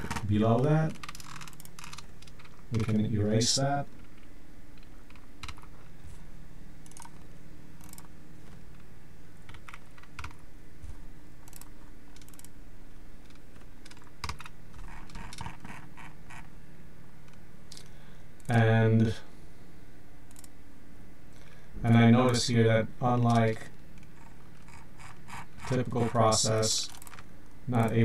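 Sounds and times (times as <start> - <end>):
faint low hum: 0.0 - 28.0
keyboard and mouse clicks: 4.0 - 5.8, 6.8 - 7.2, 9.5 - 12.5, 13.2 - 16.4, 20.3 - 20.5.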